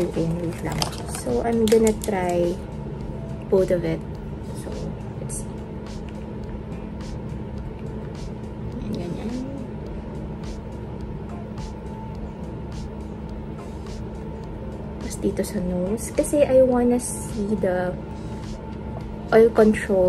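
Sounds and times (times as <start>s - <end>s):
low background rumble and hum: 0.0s - 20.0s.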